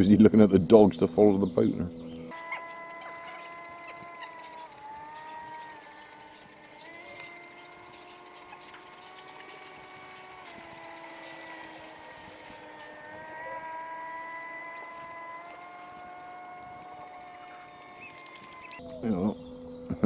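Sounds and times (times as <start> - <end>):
distant outboard motor whine: 0.0 - 20.0.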